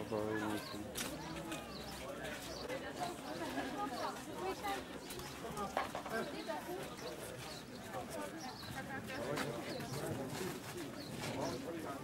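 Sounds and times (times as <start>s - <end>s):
group of people chattering: 0.0s - 12.0s.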